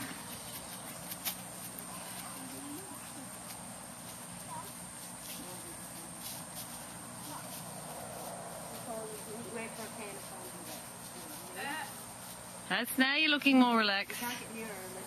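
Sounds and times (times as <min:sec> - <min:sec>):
outdoor background noise: 0:00.0 - 0:15.0.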